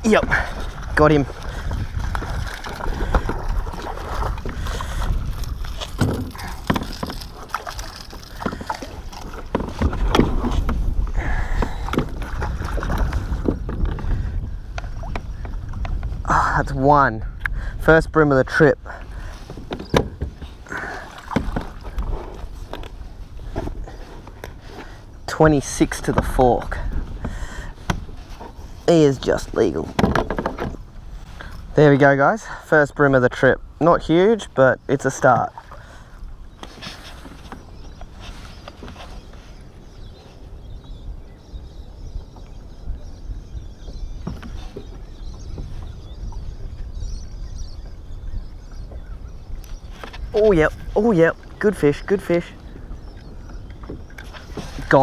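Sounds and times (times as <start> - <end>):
wind on microphone: 0.0 - 31.8, 35.6 - 51.8
water lapping at hull: 0.0 - 55.0.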